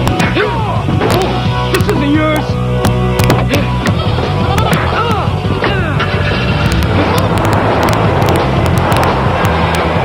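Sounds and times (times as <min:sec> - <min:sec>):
background music: 0:00.0 - 0:10.0
vehicle noisy rush: 0:06.4 - 0:10.0.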